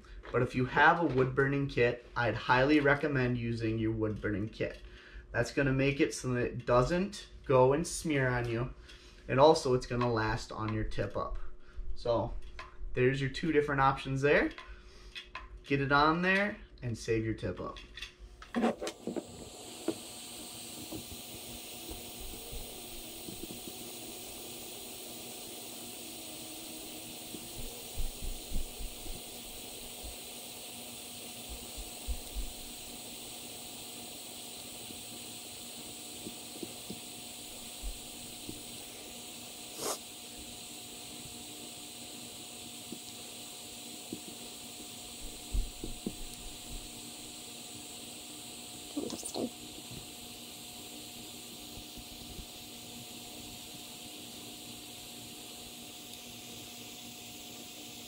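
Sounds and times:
hiss of butane soldering iron: 18.5 - 58.0.

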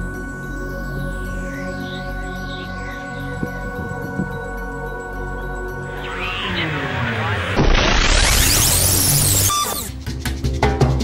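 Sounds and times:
intro music: 0.0 - 11.0.

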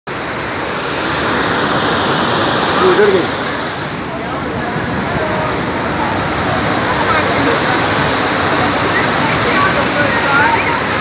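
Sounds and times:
rushing water: 0.1 - 11.0.

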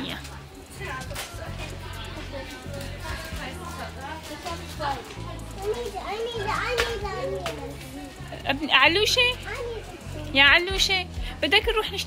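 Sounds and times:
children chattering: 0.0 - 10.8.

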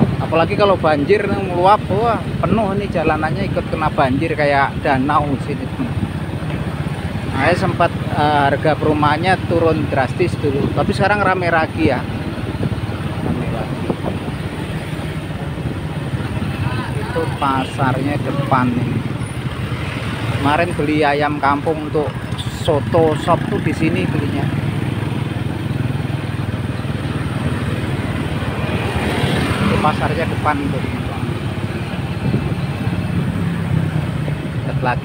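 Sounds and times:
road noise: 0.0 - 35.0
vehicle engine rumble: 0.0 - 35.0.

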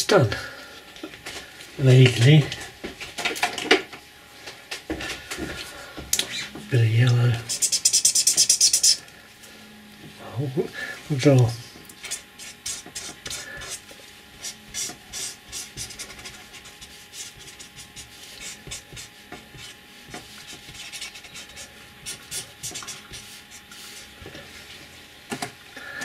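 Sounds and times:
felt-tip marker scratching paper: 7.5 - 9.0, 12.1 - 24.0.

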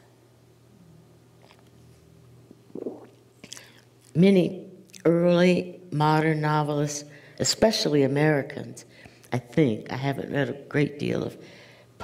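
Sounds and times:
low electrical hum: 0.0 - 12.0
person drinking water: 1.4 - 1.8, 2.5 - 4.1
gulp: 2.7 - 3.8.

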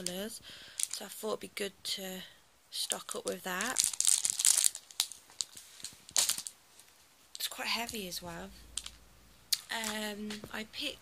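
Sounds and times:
plastic wrapping crinkling: 0.0 - 1.1, 2.9 - 8.0, 8.7 - 9.0.

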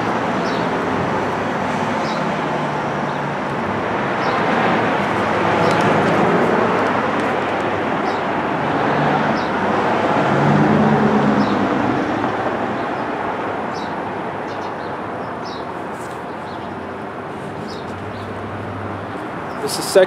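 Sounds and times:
motor vehicle passing: 0.0 - 13.4, 15.4 - 20.0.

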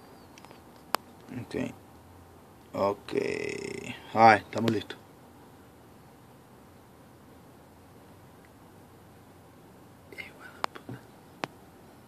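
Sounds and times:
faint whisper: 10.1 - 11.1.

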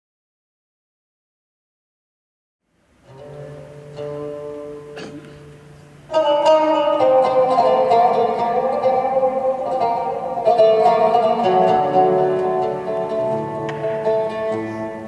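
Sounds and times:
oud plucked notes: 3.0 - 15.0.

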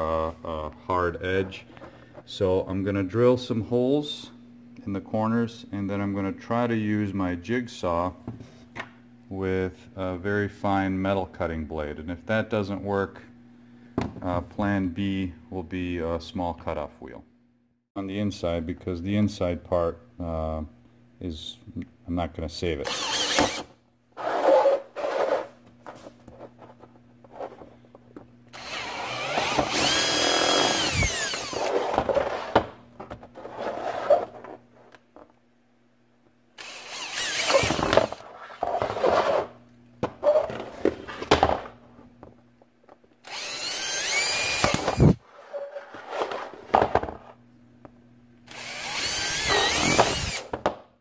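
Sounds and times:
cordless drill whining: 22.9 - 23.7, 28.5 - 31.8, 36.6 - 38.2, 43.2 - 45.2, 48.5 - 50.5
drill bit boring through plastic: 22.9 - 23.7, 28.6 - 31.8, 36.6 - 38.2, 43.2 - 45.2, 48.5 - 50.5.

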